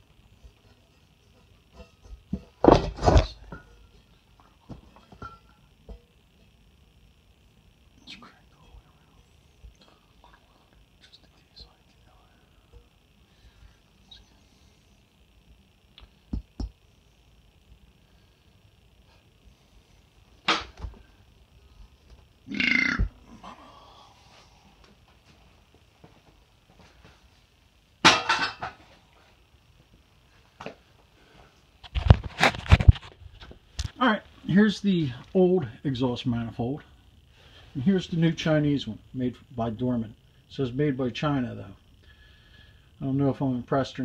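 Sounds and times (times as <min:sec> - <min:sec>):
faint steady hiss: 0:00.0 - 0:44.0.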